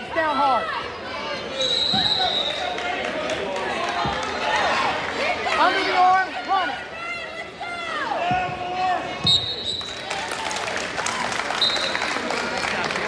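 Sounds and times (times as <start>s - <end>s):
crowd noise: 0.0s - 13.0s
voices shouting from stands: 0.1s - 10.4s
referee's whistle blasts: 1.5s - 2.7s, 9.2s - 10.0s, 11.6s - 12.0s.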